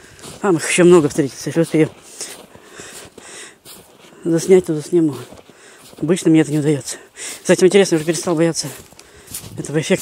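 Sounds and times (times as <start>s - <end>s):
footsteps crunching in snow: 0.0s - 10.0s.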